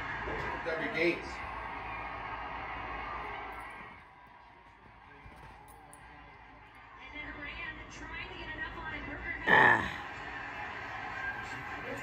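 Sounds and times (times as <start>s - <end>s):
muffled television football broadcast: 0.0s - 12.0s.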